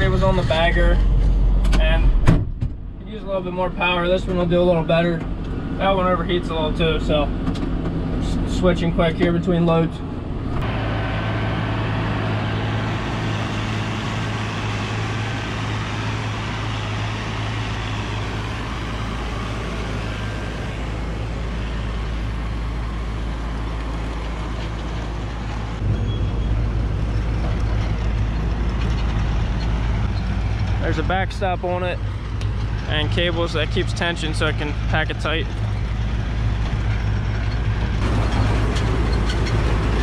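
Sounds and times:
diesel tractor engines running: 0.0s - 40.0s.

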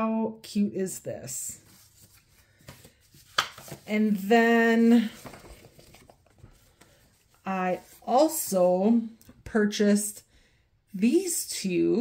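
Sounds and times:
paper cards handled on desk: 1.6s - 4.3s, 4.9s - 8.1s.

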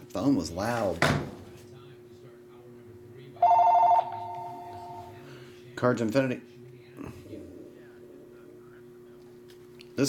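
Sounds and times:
telephone ringing: 3.4s - 5.2s.

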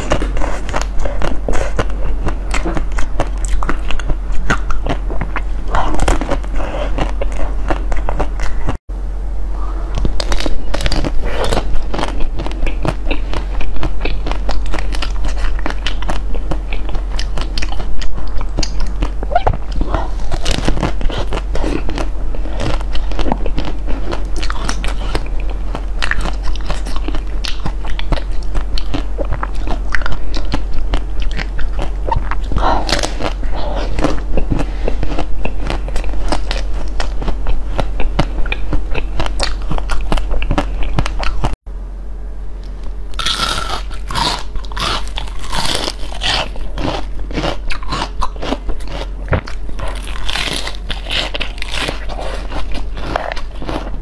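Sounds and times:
crunchy biting and chewing: 0.0s - 8.8s, 9.8s - 41.6s, 42.6s - 54.0s.

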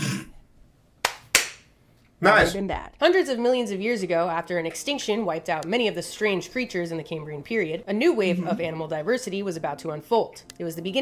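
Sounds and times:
sharp hand claps: 1.0s - 1.7s.

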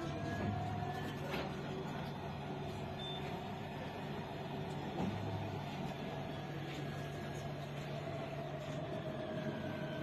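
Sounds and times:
tram carriage running noise: 0.0s - 10.0s.

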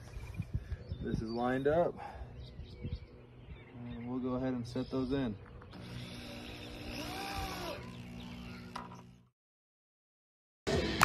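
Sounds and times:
power drill driving screws: 5.7s - 9.1s.

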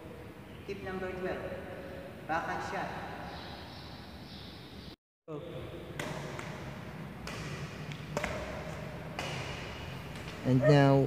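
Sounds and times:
badminton racket hitting shuttlecock: 5.9s - 10.6s.

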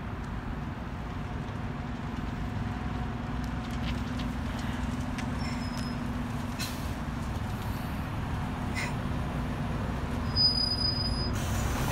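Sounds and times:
bus engine droning: 0.0s - 11.9s
faint high squeal: 5.4s - 6.1s, 10.2s - 11.4s.

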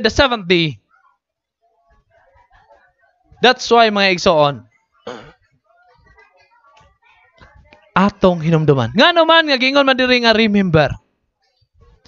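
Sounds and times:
man speaking: 0.0s - 0.9s, 3.4s - 4.7s, 8.0s - 11.0s
faint room sounds: 0.8s - 3.7s.

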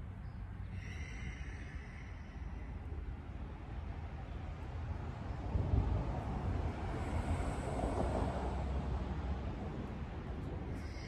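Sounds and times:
wind on microphone: 5.0s - 11.0s.

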